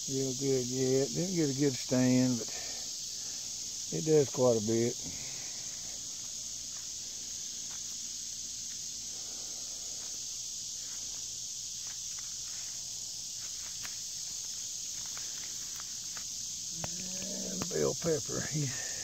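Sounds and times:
high-pitched insect chorus: 0:00.0 - 0:19.0
footsteps through grass: 0:05.7 - 0:17.7.

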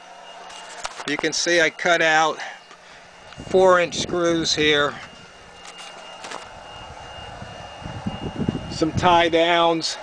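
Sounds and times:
faint high whine: 0:00.0 - 0:10.0
low steady rumbling: 0:02.8 - 0:09.5.

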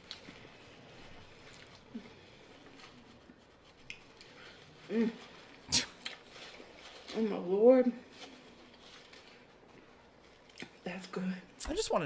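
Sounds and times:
person eating: 0:03.8 - 0:06.8.

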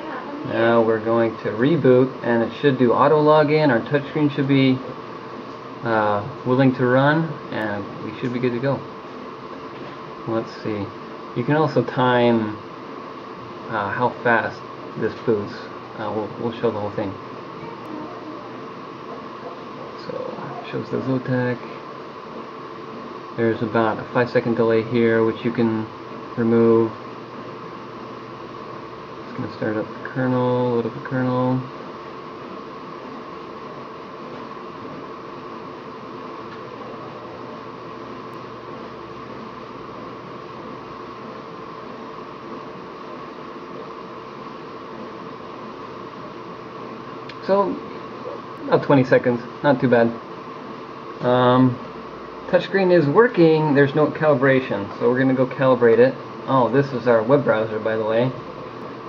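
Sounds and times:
equipment hum and hiss: 0:00.0 - 0:59.0
fan whirring: 0:00.0 - 0:59.0.

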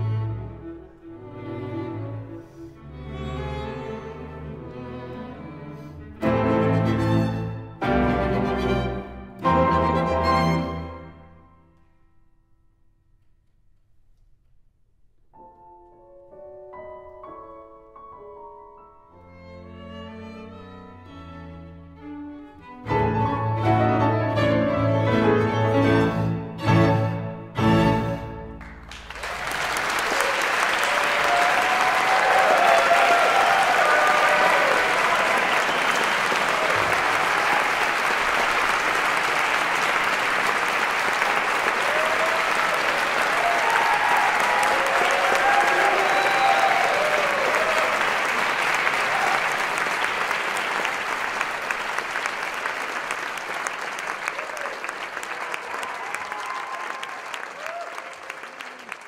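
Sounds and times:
audience applauding: 0:28.5 - 0:59.0.

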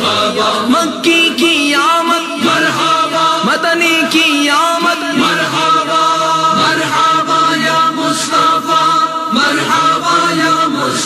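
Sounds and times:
voices chanting: 0:00.0 - 0:01.2, 0:02.0 - 0:11.0.

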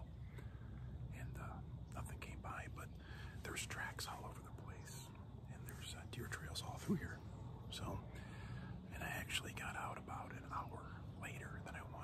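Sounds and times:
man whispering: 0:01.0 - 0:12.0.

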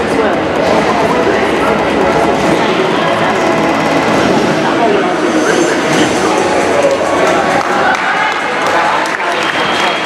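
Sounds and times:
crowd chatter in large hall: 0:00.0 - 0:10.0.

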